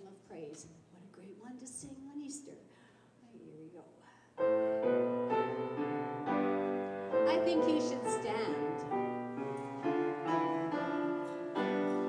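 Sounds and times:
piano playing hymn chords: 4.4 - 12.0.

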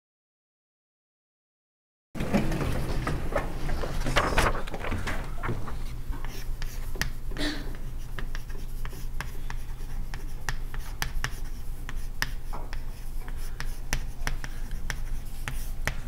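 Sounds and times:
chalk tapping and scratching: 6.2 - 16.0.

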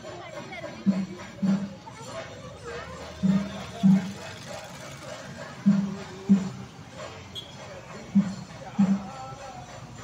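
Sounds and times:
crowd hubbub: 0.0 - 10.0
deep drum beats: 0.0 - 10.0
festival music: 0.0 - 10.0.

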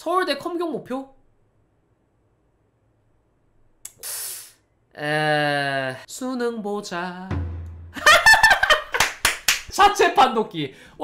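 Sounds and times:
hissing breath drawn in: 4.0 - 4.7.

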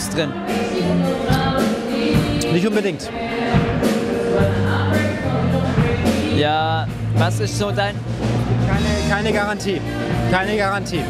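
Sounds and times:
choral singing: 0.0 - 7.2, 8.5 - 11.0
steady bass line: 3.6 - 11.0.

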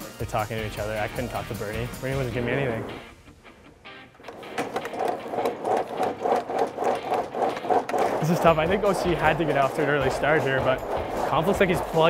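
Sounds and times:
climbing machine mechanical clatter: 4.2 - 12.0.

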